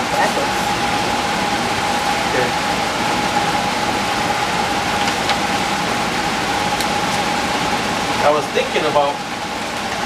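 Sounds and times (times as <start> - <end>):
machine whine: 0.0 - 10.0.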